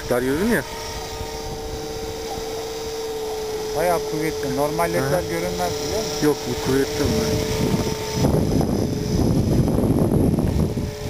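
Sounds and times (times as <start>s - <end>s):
low rumbling noise: 0.0s - 11.0s
model helicopter whine: 0.0s - 11.0s.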